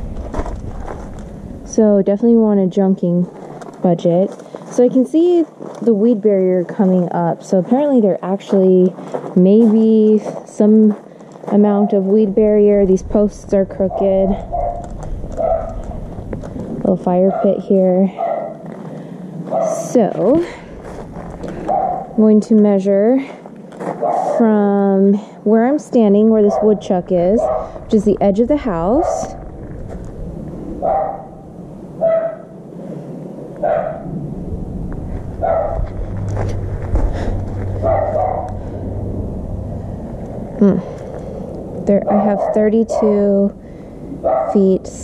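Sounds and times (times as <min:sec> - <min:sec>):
low steady hum: 0:00.0 - 0:45.0
dog barking: 0:13.9 - 0:15.8, 0:17.3 - 0:18.6, 0:19.5 - 0:19.8, 0:21.7 - 0:22.2, 0:24.0 - 0:24.5, 0:26.4 - 0:27.8, 0:30.8 - 0:31.4, 0:32.0 - 0:32.5, 0:33.6 - 0:34.1, 0:35.4 - 0:35.9, 0:37.8 - 0:38.6, 0:42.1 - 0:43.2, 0:44.2 - 0:44.6.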